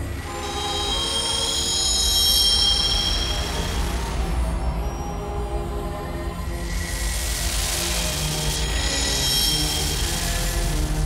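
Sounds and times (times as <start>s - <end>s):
continuous low rumble: 0.0s - 11.0s
shrill high-pitched whine: 0.0s - 11.0s.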